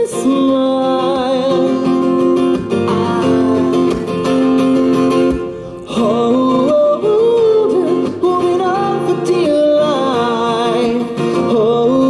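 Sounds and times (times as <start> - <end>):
strummed acoustic guitar: 0.0 - 12.0
man singing long held notes: 5.8 - 12.0.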